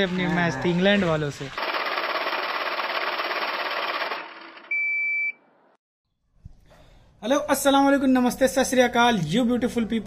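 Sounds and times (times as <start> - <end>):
electronic buzzing rattle: 1.6 - 4.7
high-pitched beep: 4.7 - 5.4.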